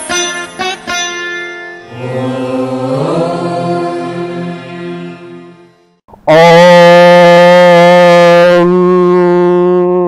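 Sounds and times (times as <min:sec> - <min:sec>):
conch shell blown: 0:06.4 - 0:10.0.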